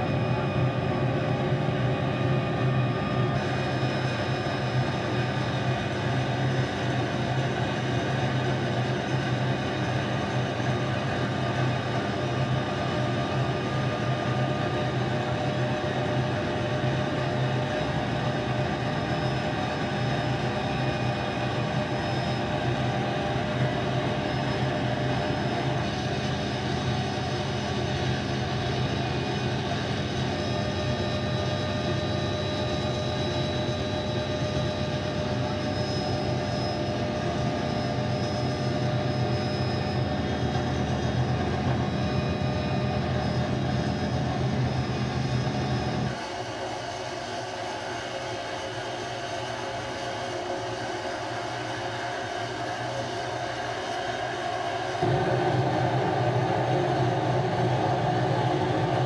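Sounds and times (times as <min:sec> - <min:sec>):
deep rotor drone: 0:00.0 - 0:46.2, 0:51.6 - 0:59.0
helicopter engine whine: 0:00.0 - 0:59.0.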